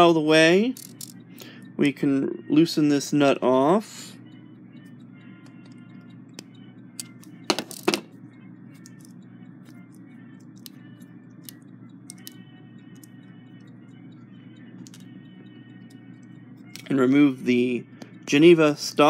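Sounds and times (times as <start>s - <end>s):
low steady hum: 0.0s - 19.0s
small metallic clicks and taps: 10.4s - 13.2s, 14.8s - 15.2s.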